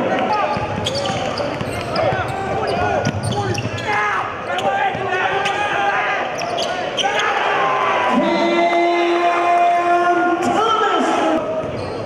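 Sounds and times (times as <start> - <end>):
sharp shoe squeaks: 0.3 - 4.8, 6.4 - 7.2.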